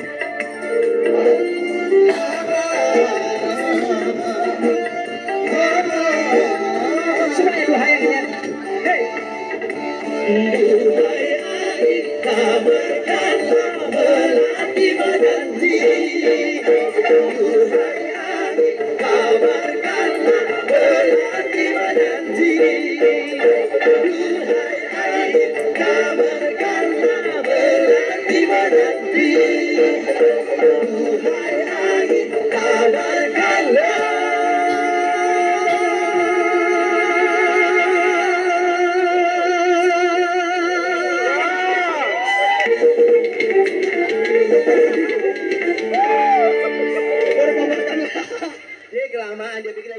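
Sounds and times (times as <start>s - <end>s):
band accompaniment: 0.0s - 48.9s
person singing: 0.6s - 48.6s.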